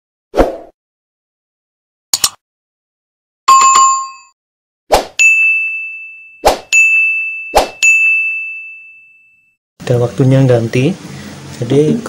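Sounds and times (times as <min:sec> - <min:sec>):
bright bell-like ding: 0:05.2 - 0:09.5.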